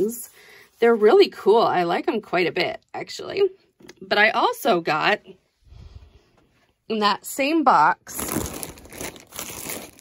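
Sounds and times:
plastic bags crinkling: 8.1s - 10.0s.

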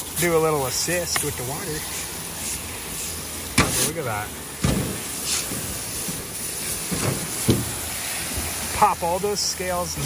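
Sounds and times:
water spraying from hose nozzle: 0.0s - 10.0s.

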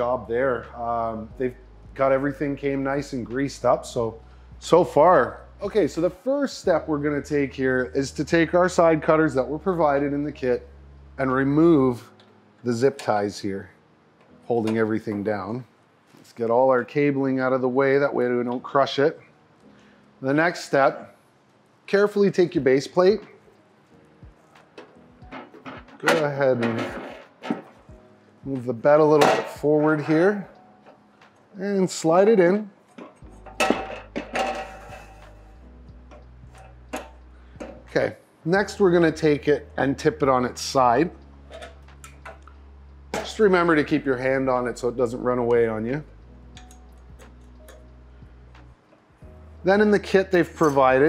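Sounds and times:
faint background music: 0.0s - 51.0s.

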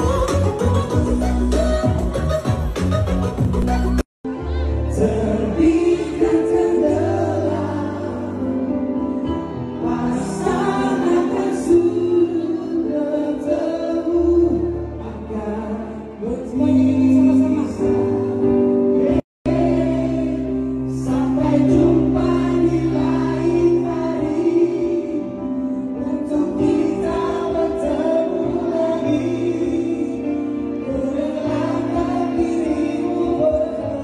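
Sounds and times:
amplified musical accompaniment: 0.0s - 34.0s
voices singing together: 4.9s - 8.7s, 9.8s - 18.2s, 18.8s - 34.0s.

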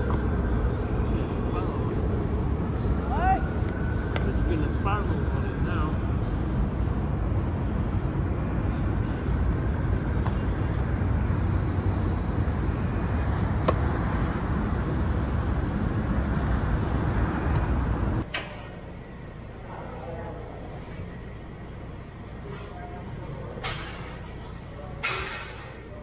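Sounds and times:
city traffic rumble: 0.0s - 26.0s
football slapping into hands: 10.2s - 10.4s, 13.6s - 13.9s.

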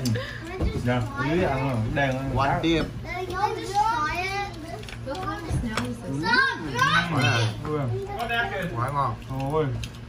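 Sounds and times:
voices talking and exclaiming: 0.0s - 9.8s.

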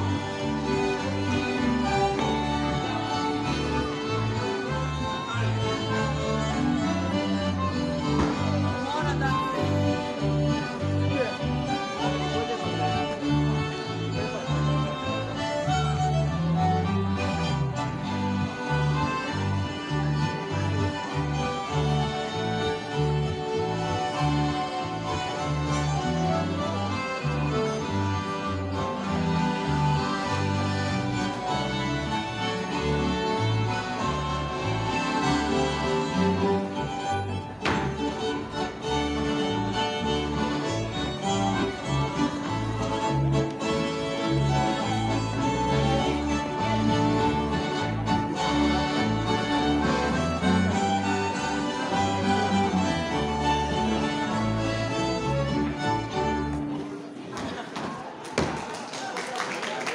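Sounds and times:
bass line: 0.0s - 56.5s
fiddle-led folk dance band: 0.0s - 58.6s.

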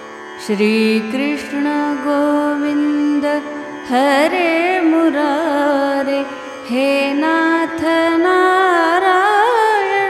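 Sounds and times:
harmonium and tanpura drone: 0.0s - 10.0s
woman singing a chant: 0.4s - 10.0s.

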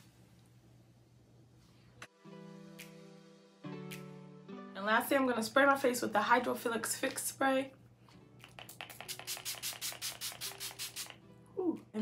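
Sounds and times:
spray bottle hissing spritzes: 8.6s - 11.2s.

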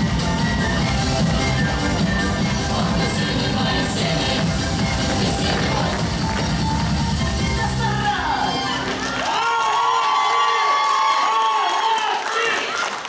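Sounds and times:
folk dance music with heavy beat: 0.0s - 9.3s.

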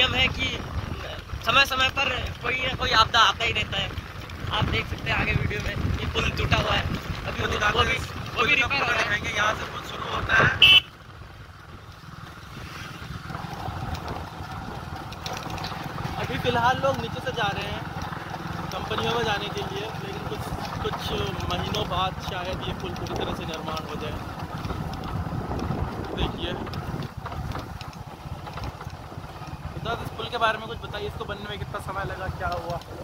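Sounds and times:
wind buffeting microphone: 0.0s - 33.0s
faint clicks: 11.7s - 33.0s.

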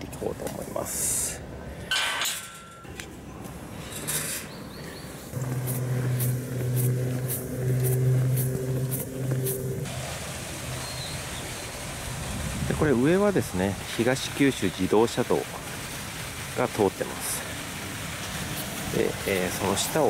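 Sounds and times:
engine humming: 2.4s - 12.6s
footsteps on paved road: 4.7s - 9.9s.

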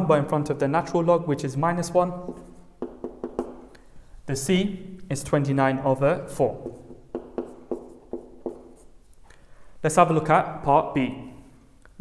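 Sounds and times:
marker pen writing on whiteboard: 2.0s - 3.9s, 6.4s - 9.2s.

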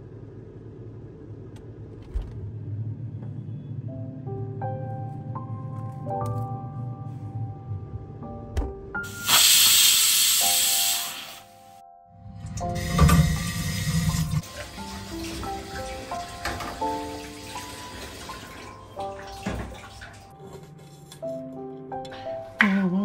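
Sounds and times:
soft background music: 2.7s - 23.0s
tap water rushing: 12.5s - 20.3s
water splashing in sink: 12.5s - 20.3s.

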